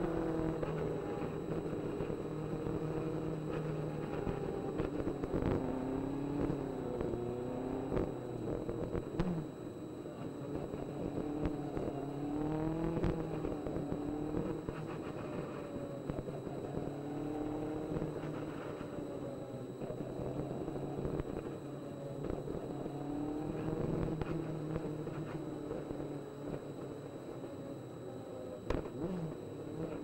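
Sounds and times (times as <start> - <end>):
wind and road noise: 0.0 - 27.8.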